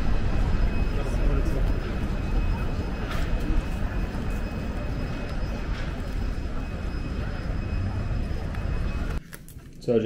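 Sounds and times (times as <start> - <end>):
faint high-pitched tone: 0.0 - 9.2
indistinct voices of passers-by: 0.0 - 9.2.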